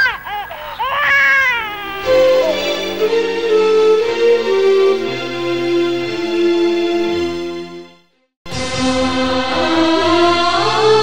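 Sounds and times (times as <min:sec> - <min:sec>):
woman crying and wailing: 0:00.0 - 0:02.6.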